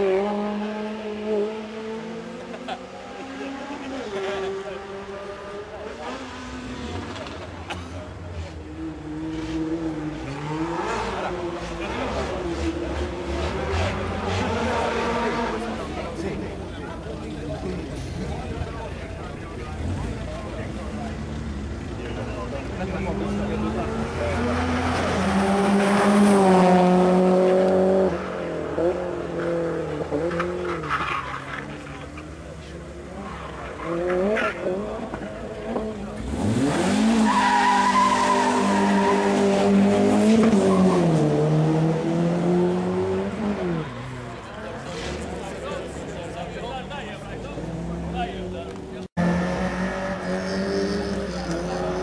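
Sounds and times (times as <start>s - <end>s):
race car engine revving: 0.0s - 52.0s.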